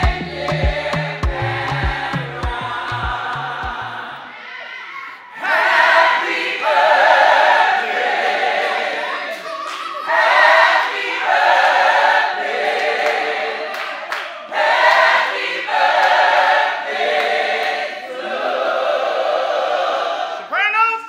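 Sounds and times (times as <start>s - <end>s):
crowd singing a birthday song: 0.0s - 4.6s, 5.2s - 20.5s.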